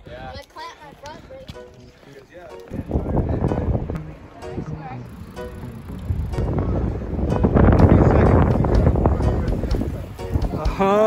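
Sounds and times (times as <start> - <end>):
wind buffeting microphone: 2.7 - 11.0.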